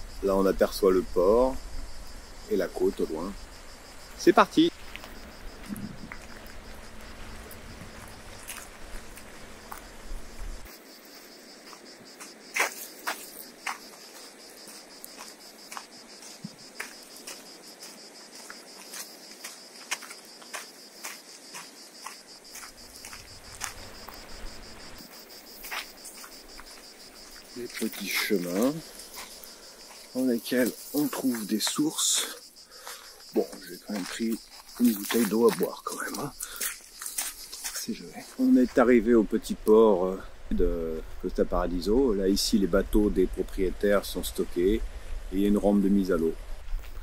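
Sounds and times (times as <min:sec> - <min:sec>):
insects chirring: 0:00.0 - 0:47.0.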